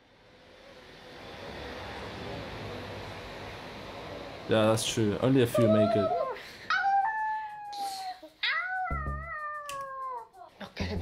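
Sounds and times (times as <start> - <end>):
women howling like animals: 5.6 - 10.3.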